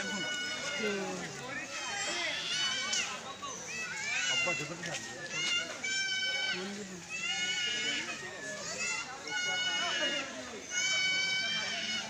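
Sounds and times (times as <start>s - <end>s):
children calling out: 0.0s - 12.0s
people chattering outdoors: 0.0s - 12.0s.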